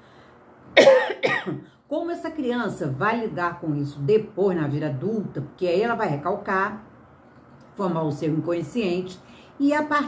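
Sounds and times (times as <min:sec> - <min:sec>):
woman coughing: 0:00.8 - 0:01.7.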